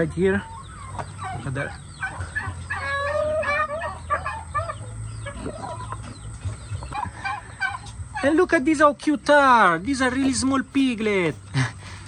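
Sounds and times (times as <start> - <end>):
chickens and turkeys clucking: 0.0 - 12.0.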